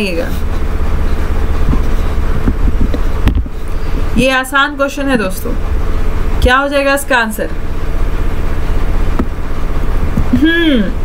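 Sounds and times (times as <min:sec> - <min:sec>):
faint hum: 0:00.0 - 0:11.0
low rumble: 0:00.9 - 0:10.8.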